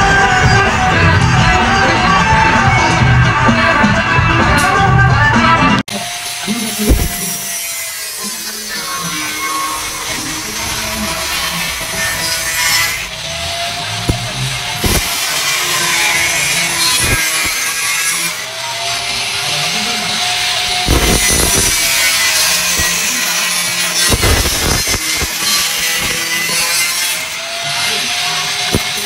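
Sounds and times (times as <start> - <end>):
angle grinder cutting steel: 5.9 - 29.0.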